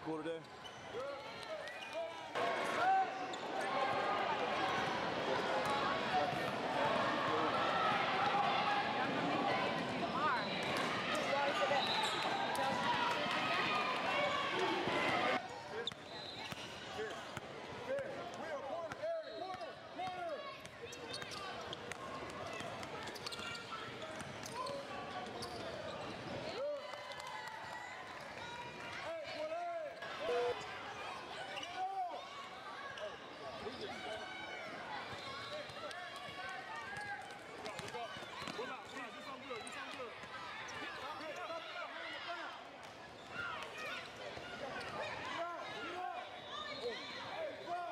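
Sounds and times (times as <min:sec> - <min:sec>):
many overlapping voices: 0:00.0 - 0:47.9.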